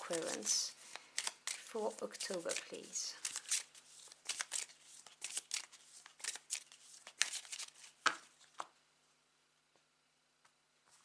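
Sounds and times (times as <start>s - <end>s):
cards being shuffled by hand: 0.0s - 8.7s.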